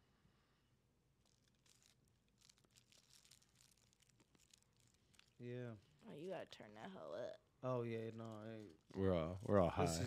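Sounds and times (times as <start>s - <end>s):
faint crackling rustles: 1.2s - 7.2s, 7.8s - 10.0s.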